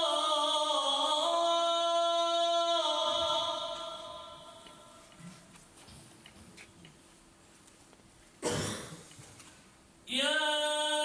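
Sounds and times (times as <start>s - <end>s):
person coughing: 8.4s - 9.1s.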